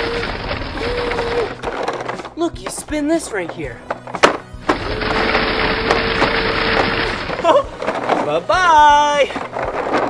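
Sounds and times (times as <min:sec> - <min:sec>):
plastic drum grinding rattle: 0:00.0 - 0:10.0.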